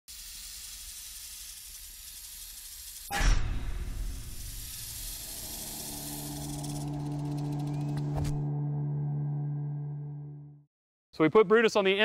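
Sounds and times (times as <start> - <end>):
snake hissing: 0.1 - 3.1, 4.0 - 7.8.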